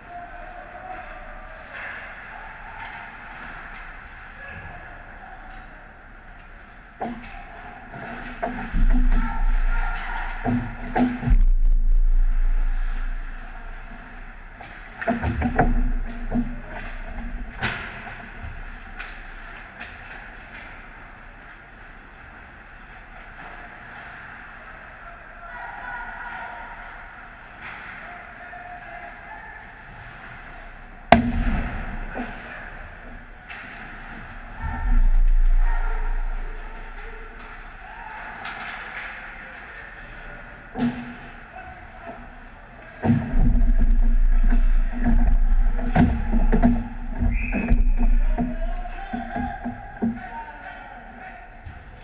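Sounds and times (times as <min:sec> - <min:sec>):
loud low rumble: 0:11.2 - 0:14.4
sharp crack: 0:31.1 - 0:32.4.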